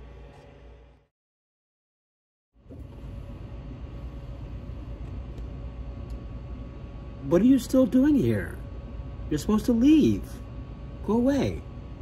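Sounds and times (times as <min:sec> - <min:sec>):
faint steady hum: 0:02.6 - 0:12.0
low room rumble: 0:02.6 - 0:12.0.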